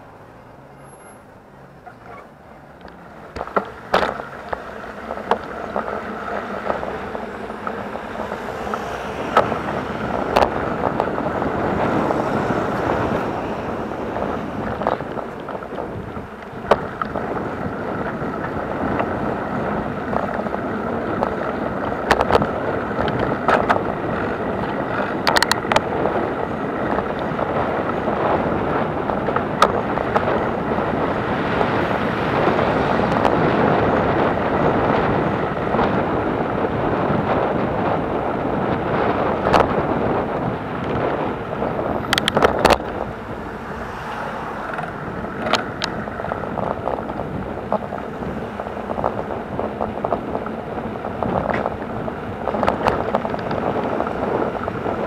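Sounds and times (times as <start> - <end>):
road rumble: 0.0 - 55.0
wind rushing over microphone: 2.8 - 55.0.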